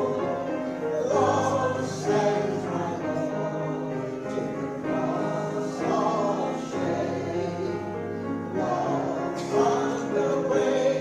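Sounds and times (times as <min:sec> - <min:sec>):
choir singing a hymn: 0:00.0 - 0:11.0
piano accompaniment: 0:00.0 - 0:11.0.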